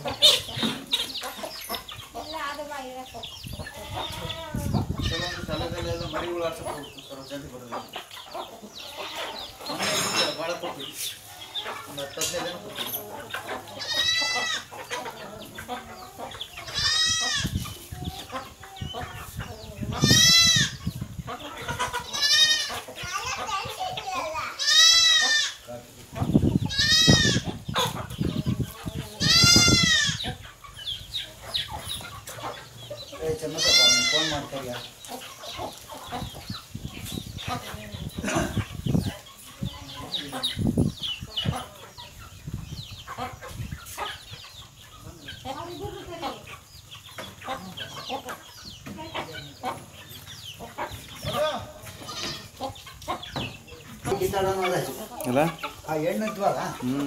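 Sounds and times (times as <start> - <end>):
chickens calling: 0.0 - 57.0
chickens clucking: 0.0 - 57.0.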